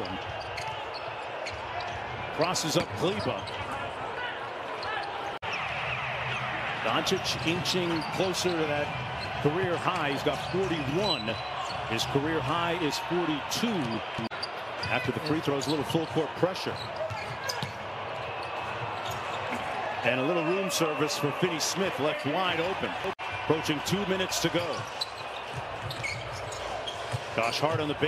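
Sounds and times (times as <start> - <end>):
sneakers squeaking: 0.0 - 12.1, 13.8 - 20.0, 24.6 - 28.0.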